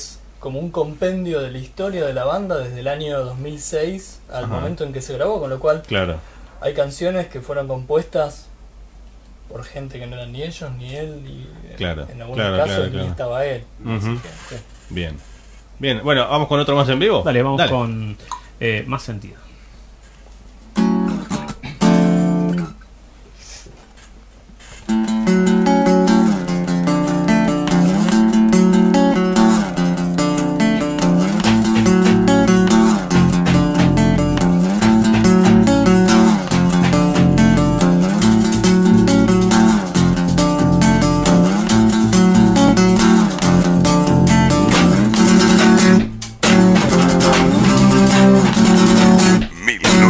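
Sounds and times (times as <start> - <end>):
acoustic guitar strumming: 20.7 - 22.7, 24.9 - 50.0
electric bass: 25.4 - 50.0
drums played with sticks: 30.8 - 50.0.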